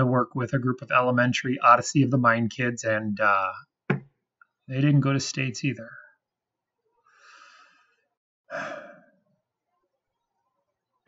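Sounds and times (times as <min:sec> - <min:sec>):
man sighing: 0:08.5 - 0:09.1.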